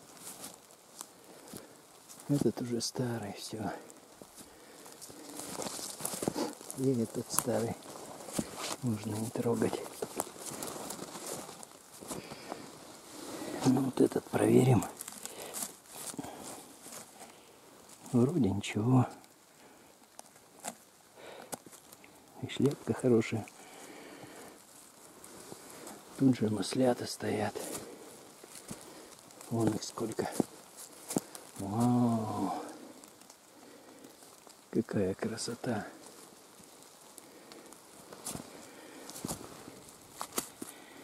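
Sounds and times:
footsteps on dry leaves: 0.0 - 2.7, 3.5 - 18.4, 19.5 - 41.0
forest background: 0.0 - 41.0.

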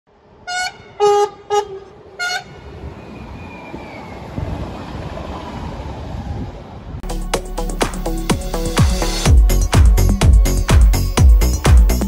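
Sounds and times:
train rumbling on rails: 0.1 - 7.1
train horn blasts: 0.4 - 2.6.

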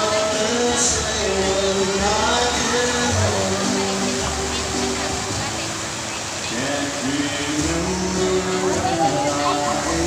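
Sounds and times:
fountain jets splashing: 0.0 - 10.0
song over loudspeakers: 0.0 - 10.0.

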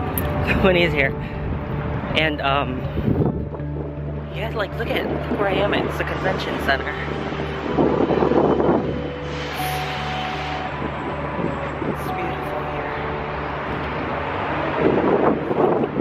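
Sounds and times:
wind buffeting microphone: 0.0 - 9.6, 13.0 - 16.0.

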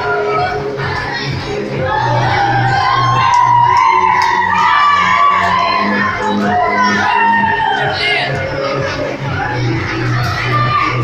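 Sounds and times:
crowd voices: 0.0 - 11.0
loud dance music: 0.0 - 11.0.

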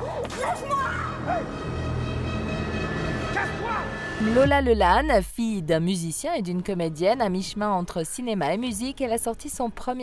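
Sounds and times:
low music drone: 1.0 - 5.7.

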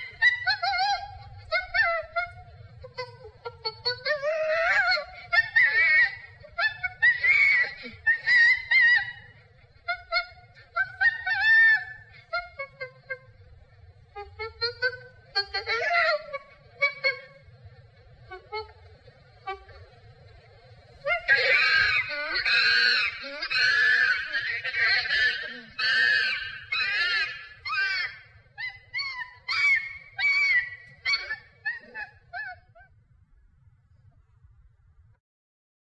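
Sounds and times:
chimpanzee calls: 0.0 - 13.5, 21.0 - 32.9.

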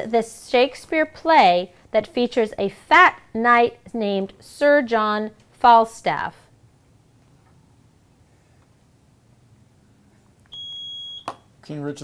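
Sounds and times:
high electronic buzzer tone: 10.5 - 11.3.

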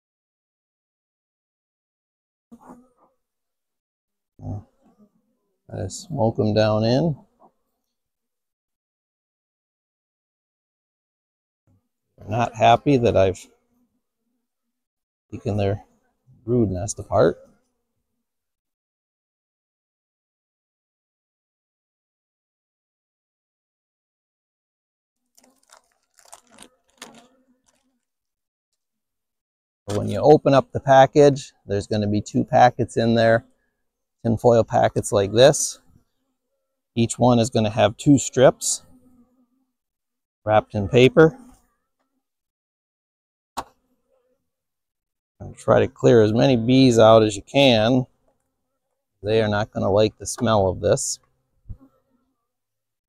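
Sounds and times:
foil package crinkling: 25.2 - 28.2.

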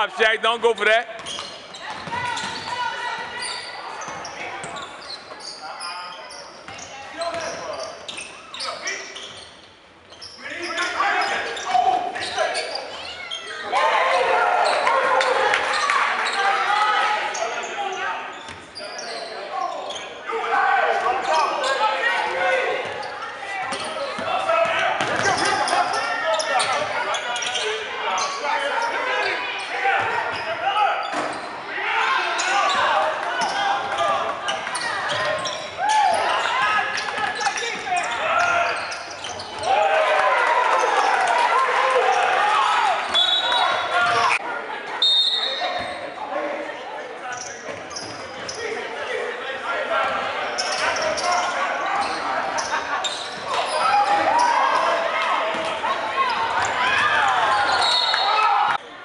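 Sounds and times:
players and spectators calling out: 0.0 - 59.0.

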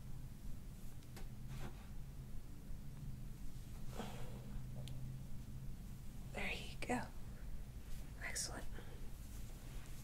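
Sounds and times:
faint low hum: 0.0 - 10.0
person whispering: 8.2 - 9.0.

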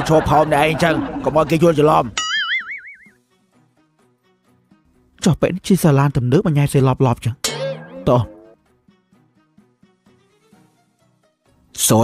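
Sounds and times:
cartoon boing sound effect: 2.2 - 3.1, 7.4 - 8.6.

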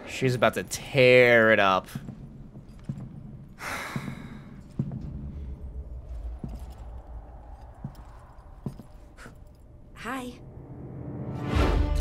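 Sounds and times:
faint low rumble: 0.1 - 10.9.

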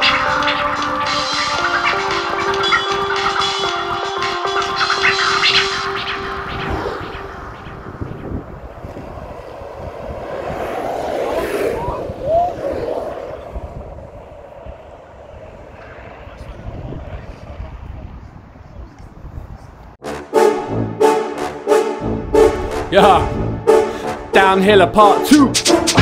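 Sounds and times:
held musical note: 0.0 - 8.5, 20.0 - 26.0
outdoor rushing noise: 0.0 - 26.0.

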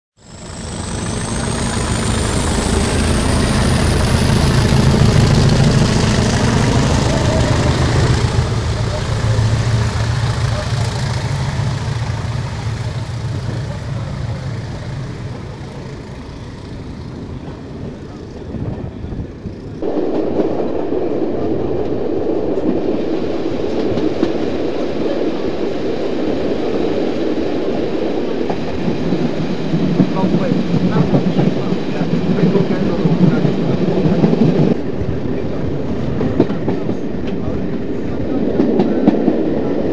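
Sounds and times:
diesel locomotive engines droning: 0.2 - 39.9
train rushing noise: 0.2 - 39.9.

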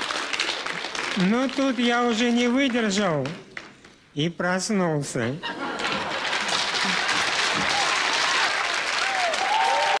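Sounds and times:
audience applauding: 0.0 - 2.1, 5.8 - 10.0.

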